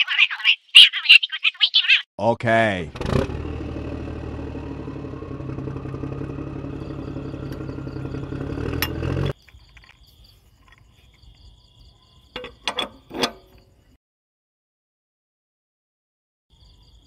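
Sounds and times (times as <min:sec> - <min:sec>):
tractor engine idling: 0:03.3 - 0:09.4.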